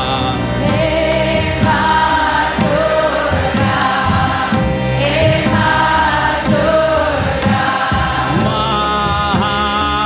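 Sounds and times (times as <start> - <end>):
choir chanting: 0.0 - 9.5
steady low beat: 0.0 - 10.0.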